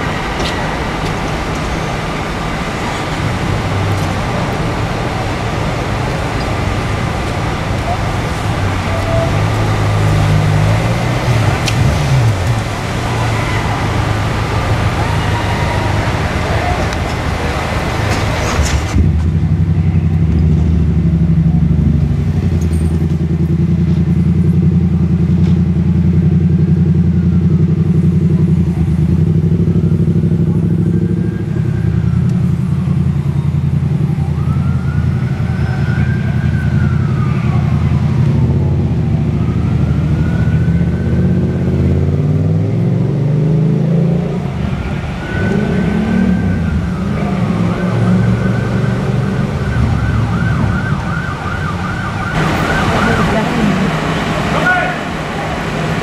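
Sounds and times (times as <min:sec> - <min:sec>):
emergency siren wailing: 0:00.0 - 0:18.2, 0:26.1 - 0:56.0
diesel engine running: 0:44.4 - 0:56.0.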